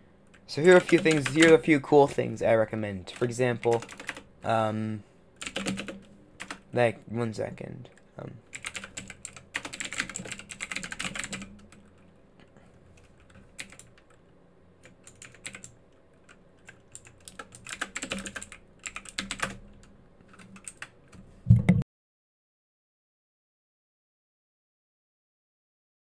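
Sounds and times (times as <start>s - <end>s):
keyboard typing: 0.3s - 1.6s, 3.1s - 4.3s, 5.4s - 6.7s, 7.9s - 12.1s, 13.0s - 14.2s, 14.8s - 21.8s.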